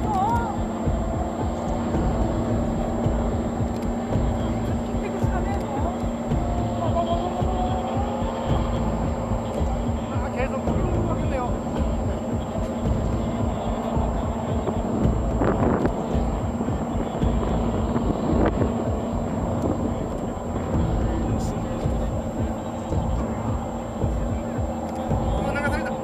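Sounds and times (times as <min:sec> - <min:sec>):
faint steady hum: 0:00.0 - 0:26.0
onlookers talking: 0:00.0 - 0:26.0
wind rumble on microphone: 0:00.0 - 0:26.0.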